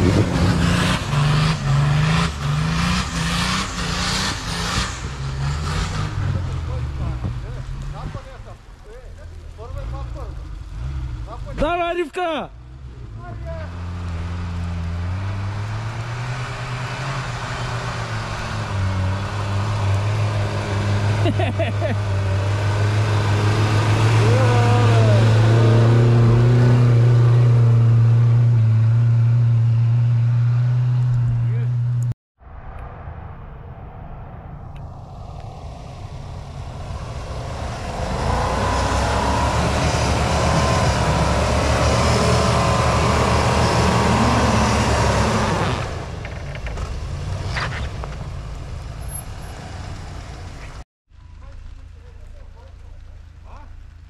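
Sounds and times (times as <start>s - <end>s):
engine revving: 0.0s - 32.2s, 34.6s - 50.8s
off-road engine under load: 0.0s - 32.2s, 36.4s - 54.0s.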